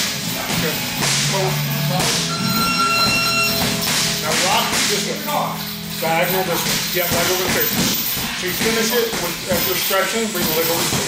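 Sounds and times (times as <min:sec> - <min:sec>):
background music: 0:00.0 - 0:10.7.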